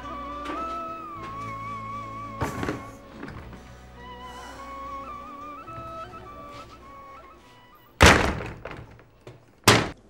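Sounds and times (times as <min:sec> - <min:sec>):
door grille rattling: 0:00.1 - 0:03.8, 0:08.0 - 0:10.0
wooden door slamming shut: 0:02.4 - 0:03.6, 0:08.0 - 0:10.0.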